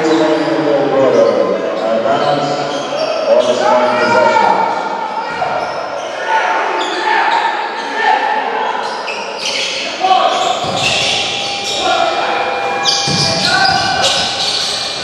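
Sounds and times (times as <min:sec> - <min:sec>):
people calling out: 0:02.9 - 0:15.0.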